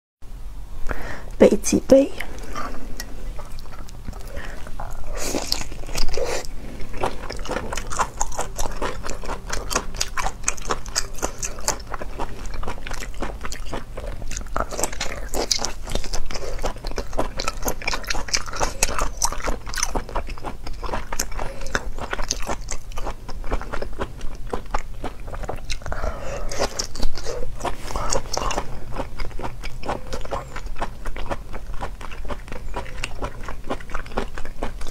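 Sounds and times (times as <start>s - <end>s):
wet chewing clicks and smacks: 2.3s - 34.9s.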